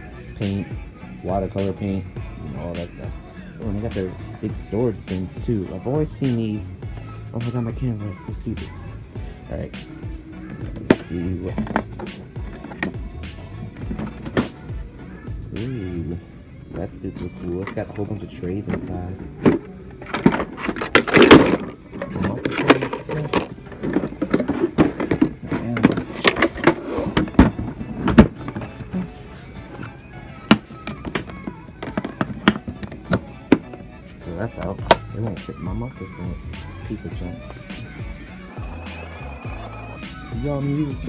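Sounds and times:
background music: 0.0 - 41.0.

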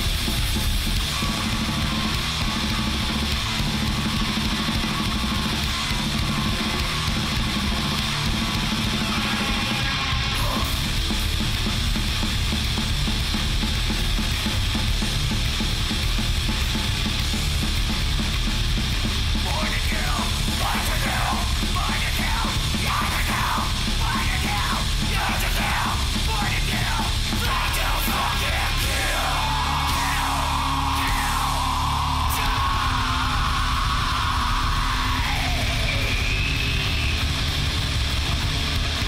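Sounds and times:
punk band playing: 0.0 - 39.0
shouted vocals: 19.4 - 37.0.

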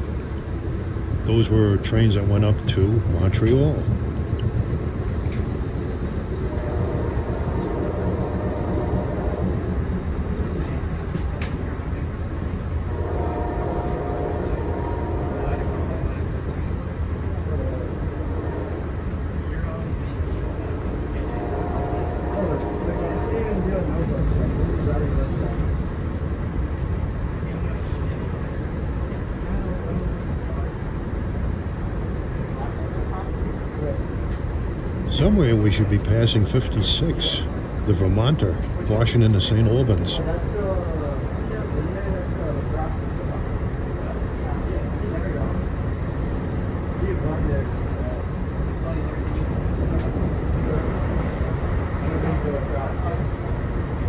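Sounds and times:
train rumbling at speed: 0.0 - 54.0.

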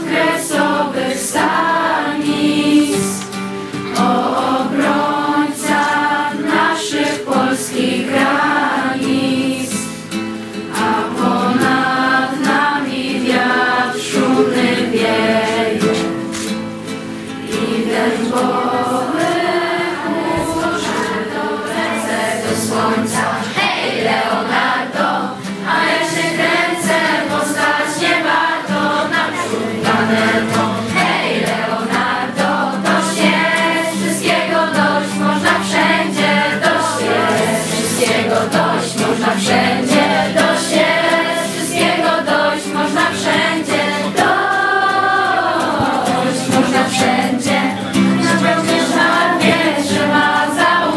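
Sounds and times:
acoustic guitar: 0.0 - 50.9
group of voices singing: 0.0 - 50.9.

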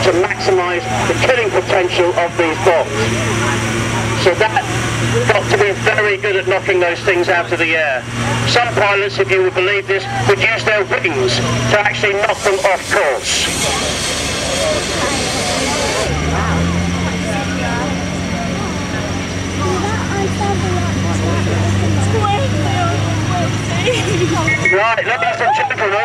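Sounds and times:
crowd chatter: 0.0 - 26.0
engine drone: 0.0 - 26.0.

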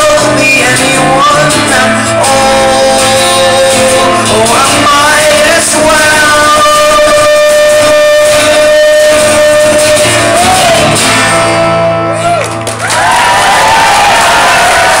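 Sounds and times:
acoustic guitar: 0.0 - 15.0
audience cheering and whooping: 12.7 - 15.0.

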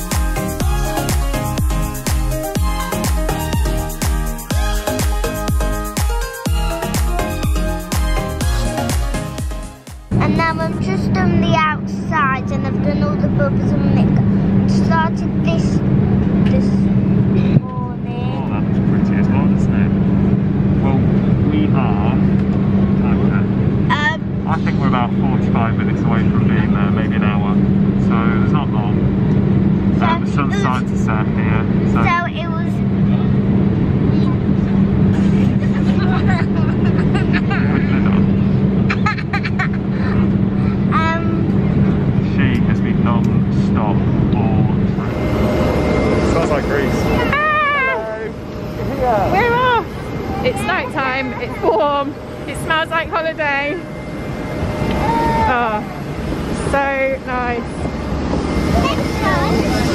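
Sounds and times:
aircraft cabin drone: 0.0 - 59.9
indistinct voices: 40.3 - 59.9.

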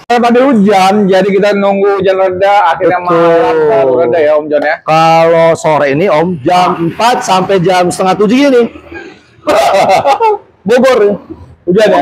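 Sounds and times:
man talking sing-song: 0.0 - 8.7.

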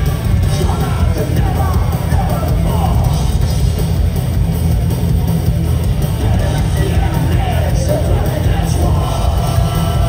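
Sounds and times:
rock band playing live: 0.0 - 10.0.

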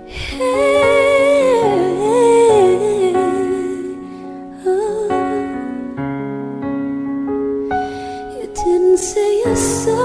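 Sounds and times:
woman singing: 0.0 - 6.0, 8.2 - 10.0.

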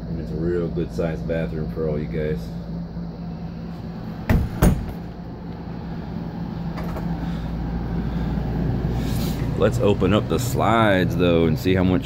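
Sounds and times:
steady low hum: 0.0 - 12.0
door knocking and latching: 4.3 - 5.0.

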